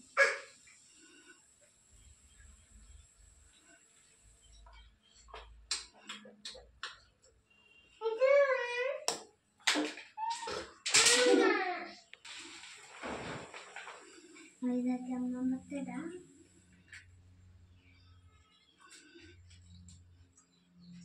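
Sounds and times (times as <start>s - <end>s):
faint high whine: 0.9s - 5.1s.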